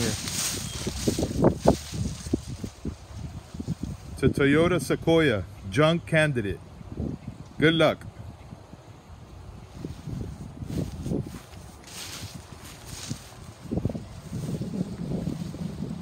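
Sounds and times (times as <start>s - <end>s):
higher rustle: 0.0s - 3.0s, 9.9s - 14.7s
wind buffeting microphone: 0.0s - 16.0s.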